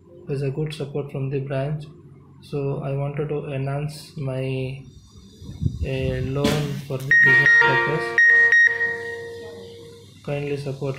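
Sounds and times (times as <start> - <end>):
electronic beeping tone: 7.1 - 10.1.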